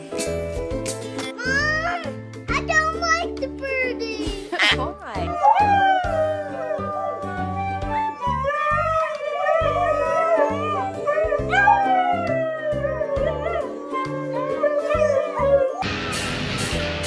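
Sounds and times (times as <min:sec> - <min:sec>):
background music with bass line: 0:00.0 - 0:17.0
husky howling: 0:05.3 - 0:16.0
flute: 0:05.4 - 0:15.8.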